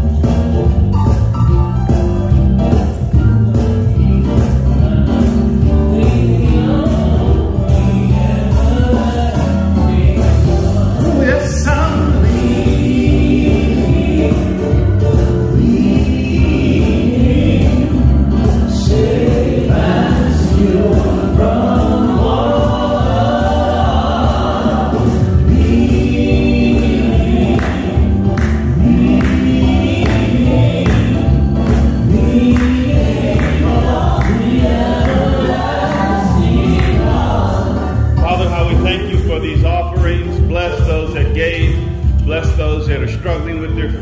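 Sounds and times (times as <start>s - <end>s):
instrumental accompaniment: 0.0s - 44.0s
gospel choir singing: 2.0s - 39.5s.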